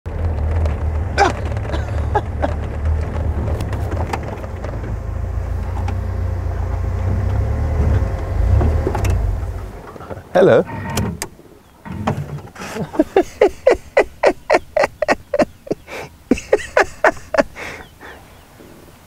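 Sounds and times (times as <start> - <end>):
vehicle engine and road rumble: 0.0 - 19.0
knocks and rattles: 0.1 - 10.3.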